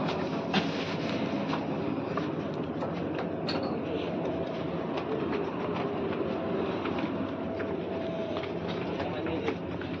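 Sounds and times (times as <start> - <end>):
refrigeration fans droning: 0.0 - 10.0.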